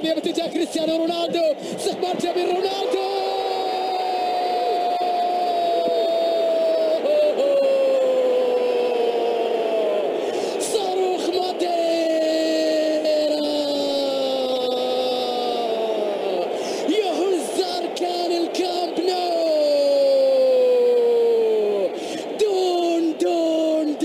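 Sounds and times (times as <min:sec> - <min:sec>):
stadium crowd noise: 0:00.0 - 0:24.0.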